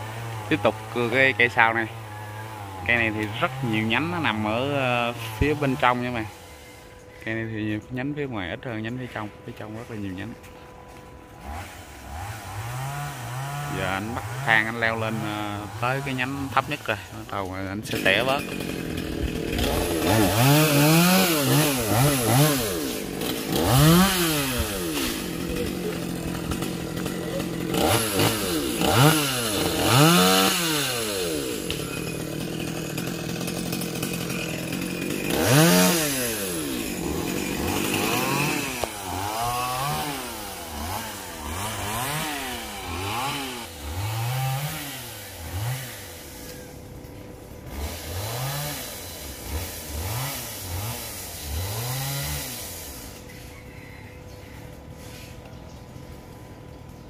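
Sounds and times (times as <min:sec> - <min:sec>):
chainsaw revving: 0:00.0 - 0:54.1.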